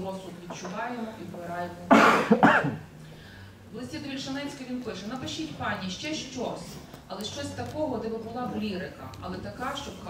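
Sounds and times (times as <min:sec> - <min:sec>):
person coughing: 0:01.9 - 0:02.8.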